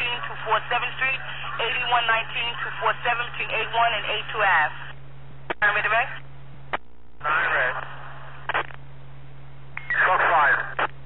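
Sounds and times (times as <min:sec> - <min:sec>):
radio static hiss: 0:00.0 - 0:08.8, 0:09.8 - 0:11.0
short radio burst: 0:09.9 - 0:10.9.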